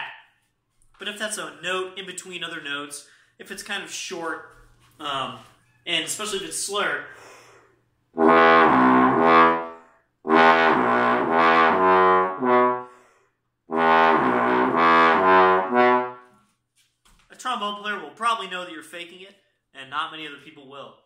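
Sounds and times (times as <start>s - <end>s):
breaths: 3.0s - 3.4s, 7.0s - 7.9s, 9.7s - 10.2s, 12.8s - 13.5s
trombone playing low notes: 8.2s - 12.9s, 13.7s - 16.3s.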